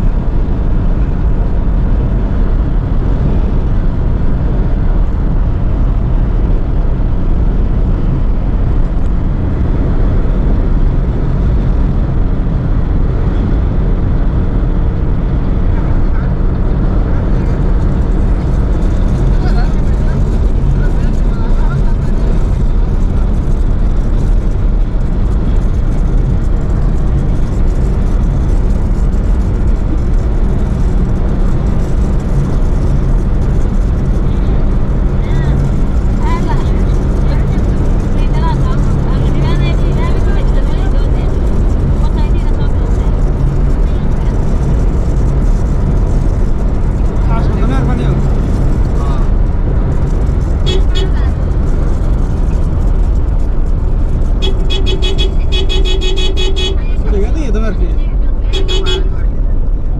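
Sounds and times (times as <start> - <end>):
vehicle driving on highway: 0.0 - 59.9
pulsing horn tone: 50.6 - 51.3, 54.4 - 57.2, 58.4 - 59.3.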